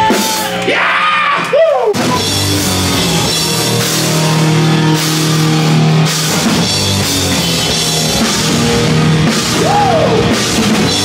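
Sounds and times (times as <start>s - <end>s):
drums and cymbals: 0.0s - 0.7s, 1.4s - 11.0s
bass guitar: 0.0s - 11.0s
distorted electric guitars: 0.0s - 11.0s.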